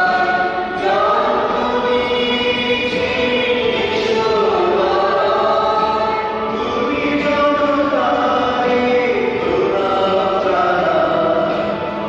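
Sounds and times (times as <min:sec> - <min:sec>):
choir singing a hymn: 0:00.0 - 0:11.9.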